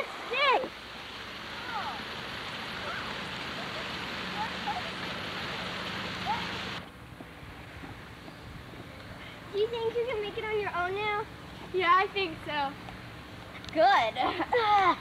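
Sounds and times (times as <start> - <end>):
steady rushing outdoor noise: 0.0 - 15.0.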